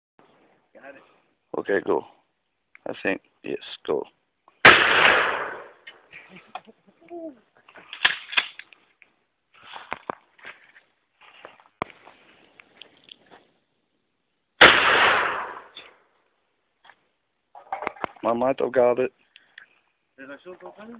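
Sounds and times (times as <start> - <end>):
shotgun shots with echo: 4.6 - 5.8, 14.6 - 15.8.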